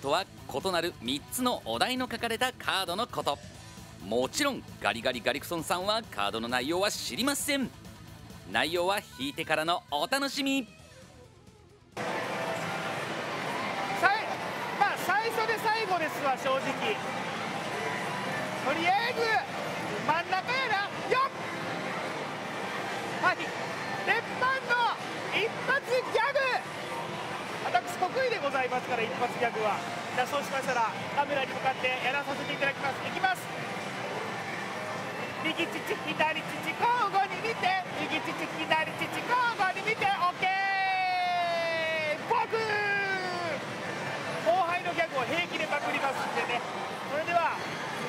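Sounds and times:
pachislot hall background noise: 0.0s - 48.0s
man talking: 4.0s - 7.7s, 8.5s - 10.7s, 18.6s - 21.3s, 35.4s - 43.6s.

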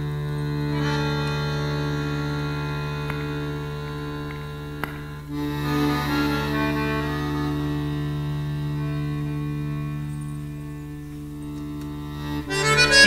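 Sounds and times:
accordion chord and melody: 0.0s - 13.0s.

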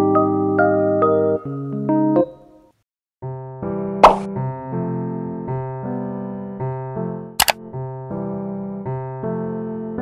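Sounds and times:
loud pop sound effect: 4.0s - 4.3s.

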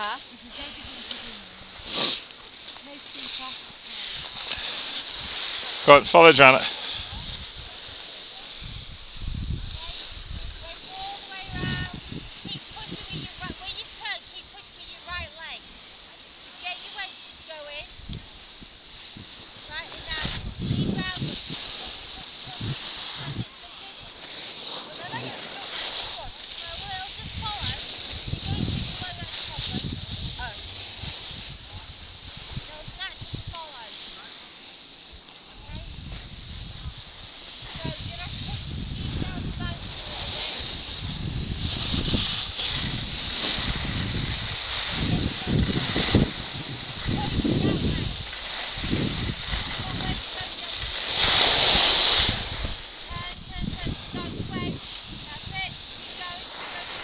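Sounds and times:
wind buffeting microphone: 0.0s - 15.8s, 16.7s - 24.2s, 24.9s - 33.9s, 35.5s - 57.0s
skis hissing on snow: 0.0s - 57.0s.

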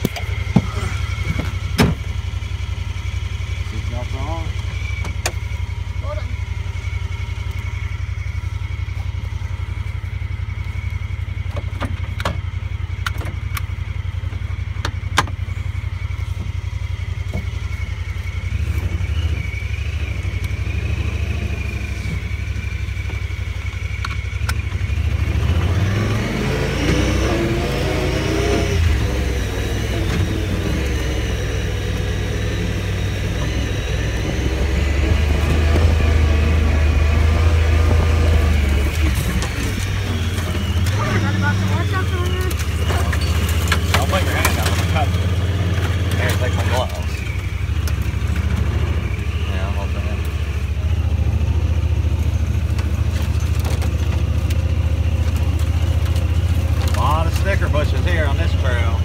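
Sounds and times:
engine running: 0.0s - 59.0s
cab rattles: 38.7s - 48.7s, 52.6s - 58.7s.

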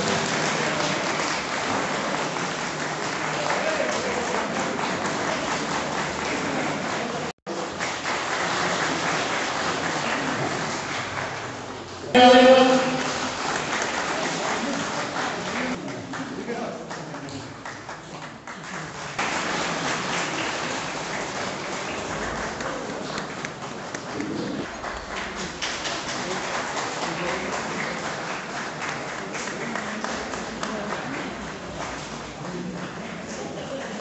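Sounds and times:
audience applauding: 0.0s - 11.5s, 18.6s - 34.0s.

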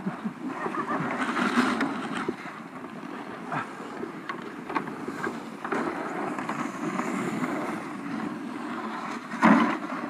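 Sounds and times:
plastic sled scraping over snow: 0.5s - 10.0s.

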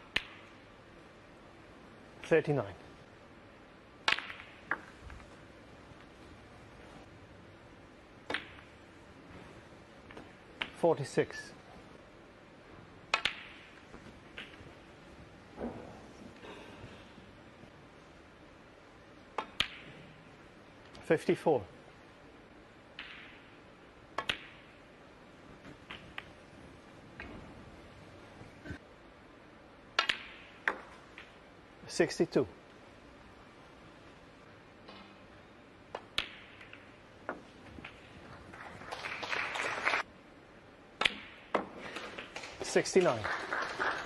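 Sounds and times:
snooker balls clicking together: 4.0s - 5.4s, 22.9s - 24.8s, 25.6s - 26.5s, 35.8s - 38.5s
snooker balls clicking: 4.0s - 6.9s, 8.2s - 9.0s, 13.1s - 15.0s, 19.2s - 20.2s, 22.8s - 24.8s, 25.5s - 27.6s, 29.9s - 31.5s, 35.8s - 38.5s.

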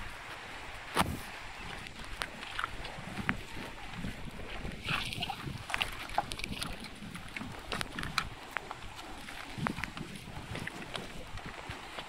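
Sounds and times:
wind rumble on microphone: 0.0s - 12.0s
hooves shifting on stones: 1.0s - 12.0s.

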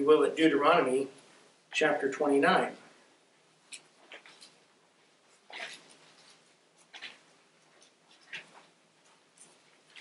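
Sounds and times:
book pages rustling: 5.3s - 10.0s.

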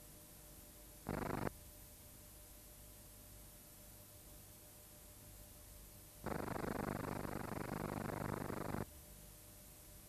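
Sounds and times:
harsh videotape buzzing: 1.0s - 1.6s, 6.2s - 8.9s.

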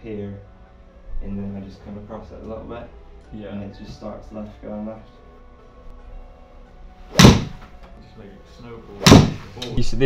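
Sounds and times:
golf club striking ball: 7.1s - 7.8s, 9.0s - 9.6s.

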